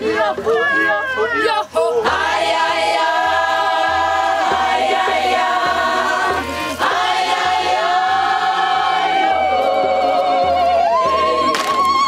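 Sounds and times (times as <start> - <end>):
steady low beat: 0.0 - 11.5
choir singing with vibrato: 0.0 - 12.0.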